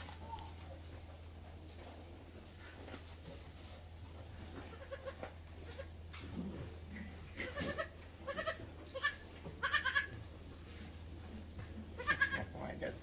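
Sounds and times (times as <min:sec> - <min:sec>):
goat kids bleating: 0:04.6 - 0:06.0, 0:07.3 - 0:10.2, 0:11.9 - 0:12.6.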